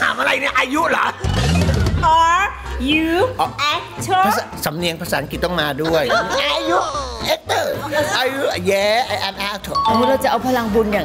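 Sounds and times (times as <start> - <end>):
light background music: 0.0 - 11.0
bell-like chime: 9.8 - 10.5.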